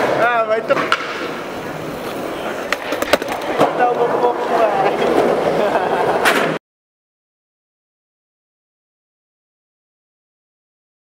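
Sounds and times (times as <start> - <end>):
skateboard clacking on ground: 0.0 - 5.4
skateboard wheels rolling on concrete: 0.0 - 6.6.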